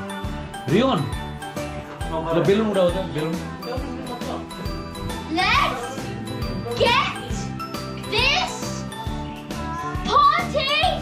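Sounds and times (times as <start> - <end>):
background music with tinkling melody: 0.0 - 11.0.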